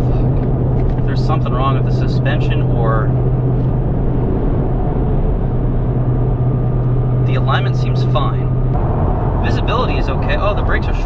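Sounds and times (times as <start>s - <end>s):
car engine humming: 0.0s - 11.0s
road and tyre noise: 0.0s - 11.0s.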